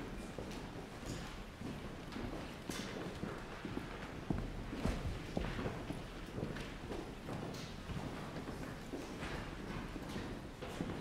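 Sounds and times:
hard-soled footsteps on hall floor: 0:00.0 - 0:11.0.

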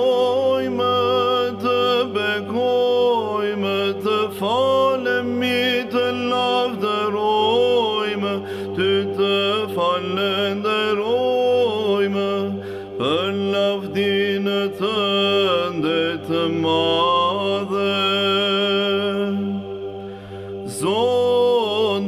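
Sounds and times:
low held vocal drone: 0:00.0 - 0:22.0
person chanting ornamented melody: 0:00.0 - 0:22.0.

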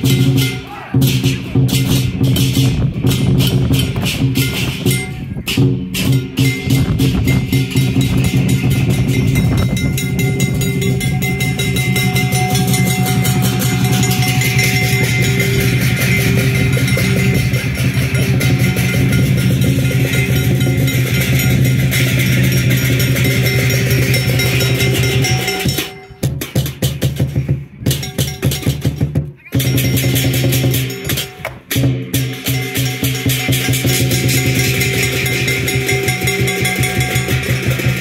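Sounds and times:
drum beating fast rhythm: 0:00.0 - 0:38.0
steady ringing tone: 0:06.1 - 0:26.2, 0:32.4 - 0:38.0.

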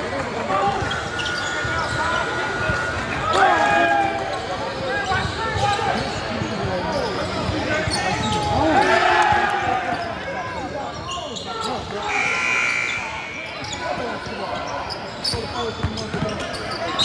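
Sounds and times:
voices echoing in gym: 0:00.0 - 0:17.0.

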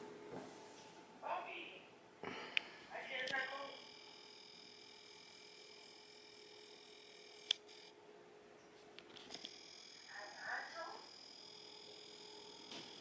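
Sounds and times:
faint high electronic whine: 0:02.3 - 0:13.0.

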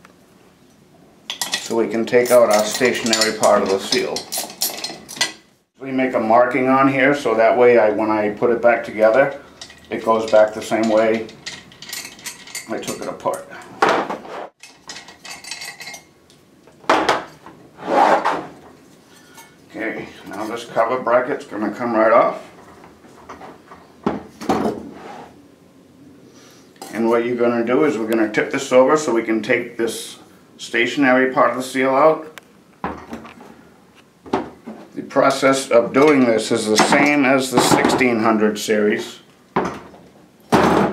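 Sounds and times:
metal pump parts clanking: 0:01.3 - 0:05.5, 0:08.8 - 0:16.1, 0:35.3 - 0:38.2
metallic rattle: 0:01.3 - 0:05.5, 0:09.1 - 0:13.4.

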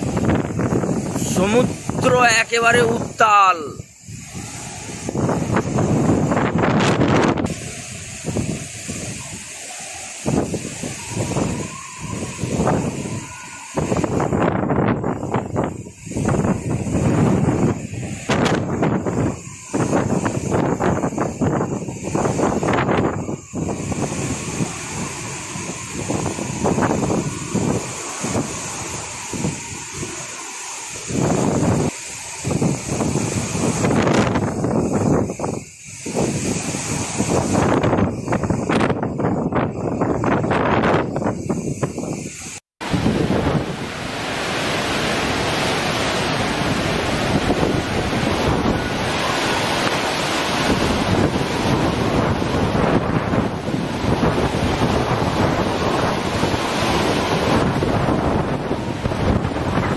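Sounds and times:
heavy surf: 0:00.0 - 0:59.9
wind buffeting microphone: 0:00.0 - 0:59.9.

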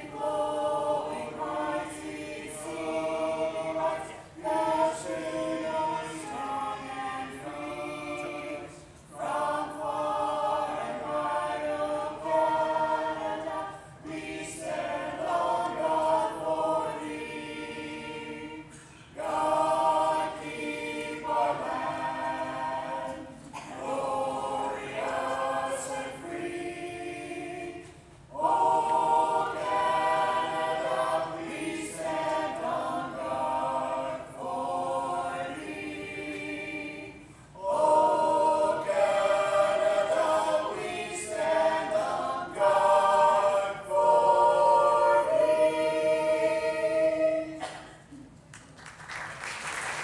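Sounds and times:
group singing a cappella: 0:00.0 - 0:48.4.

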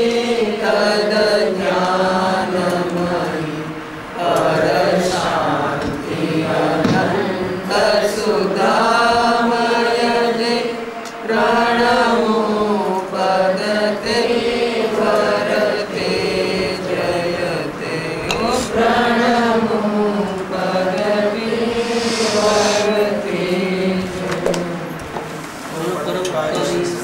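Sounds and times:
voices chanting: 0:13.3 - 0:24.3.

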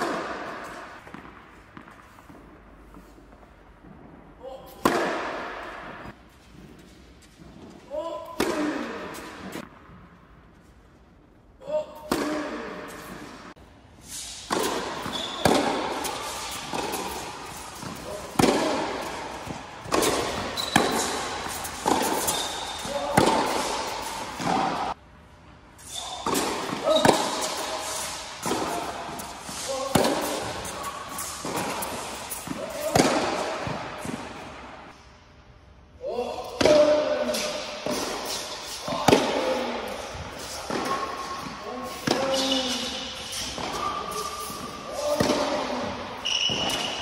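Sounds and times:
tennis balls bouncing: 0:00.0 - 0:10.1, 0:14.5 - 0:25.0, 0:26.2 - 0:34.8, 0:37.8 - 0:42.8, 0:43.6 - 0:47.0
tennis ball hits with echo: 0:04.7 - 0:06.1, 0:08.2 - 0:09.7, 0:14.5 - 0:25.0, 0:26.2 - 0:34.8, 0:36.6 - 0:42.8, 0:43.6 - 0:47.0
shoes squeaking on court: 0:14.1 - 0:24.9, 0:25.8 - 0:34.4, 0:39.6 - 0:47.0.

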